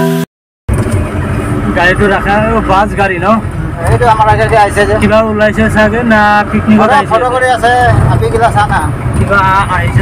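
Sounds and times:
car cabin engine and road rumble: 0.7 - 10.0.

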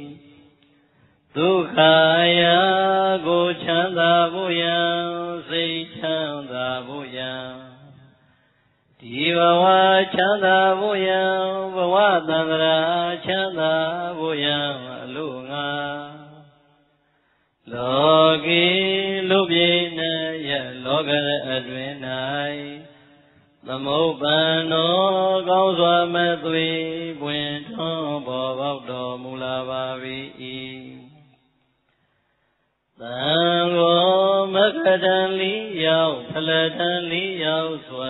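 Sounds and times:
man chanting verses: 1.3 - 8.0, 9.0 - 16.4, 17.7 - 22.9, 23.6 - 31.2, 33.0 - 38.0.

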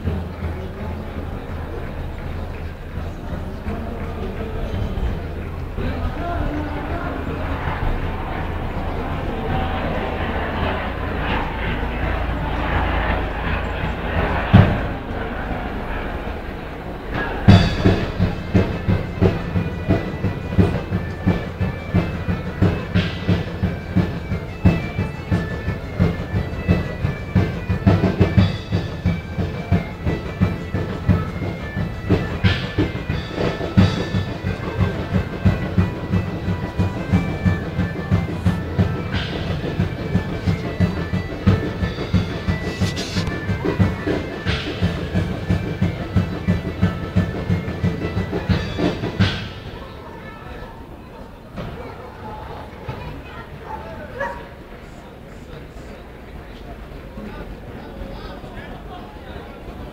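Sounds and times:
steady drum beat: 1.2 - 49.8
high stepping melody: 5.4 - 49.7.

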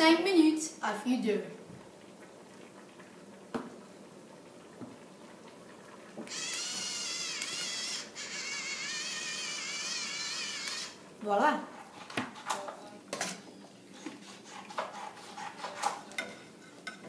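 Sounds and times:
electric pepper mill grinding: 6.3 - 11.0.

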